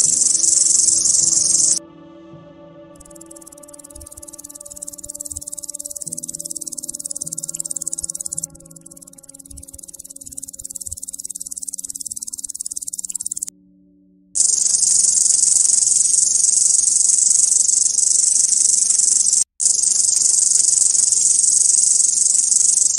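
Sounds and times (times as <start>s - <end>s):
crickets trilling: 0.0s - 1.8s, 3.0s - 13.5s, 14.4s - 22.9s.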